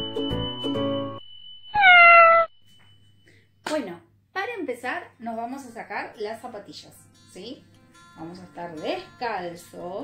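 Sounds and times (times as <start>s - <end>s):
cat meow: 1.8s - 2.5s.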